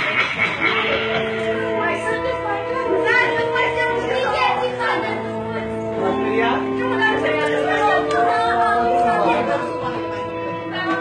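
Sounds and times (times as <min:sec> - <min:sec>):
background music with held notes: 0:00.0 - 0:11.0
people chattering: 0:00.0 - 0:11.0.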